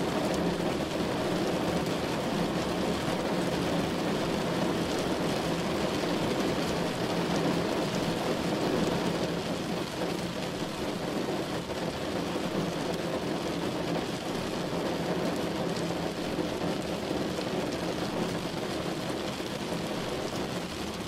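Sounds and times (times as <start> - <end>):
heavy rain on car windshield: 0.0 - 21.0.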